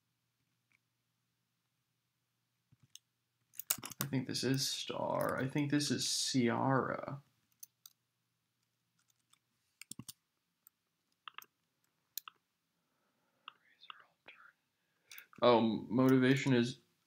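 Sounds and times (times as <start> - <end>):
keyboard and mouse clicks: 2.7 - 4.1, 9.0 - 11.6, 12.2 - 12.4.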